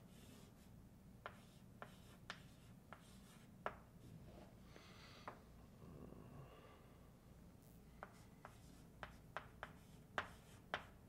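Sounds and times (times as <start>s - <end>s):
chalk tapping on chalkboard: 1.2s - 3.9s, 8.0s - 11.0s.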